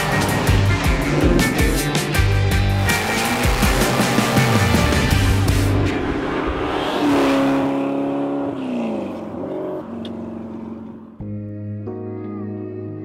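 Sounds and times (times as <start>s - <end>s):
car engine at high revs: 0.0s - 11.2s
music with sustained guitar tones: 11.2s - 13.0s.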